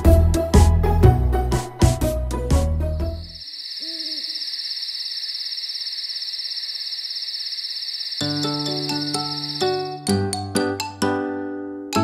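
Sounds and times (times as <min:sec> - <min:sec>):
music: 0:00.0 - 0:03.3, 0:08.2 - 0:12.0
crickets chirping: 0:03.2 - 0:10.0
owl hoot: 0:03.4 - 0:05.0.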